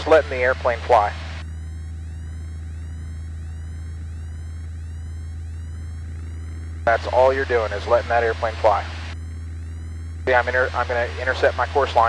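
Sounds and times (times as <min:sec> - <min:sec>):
airplane engine drone: 0:00.0 - 0:12.0.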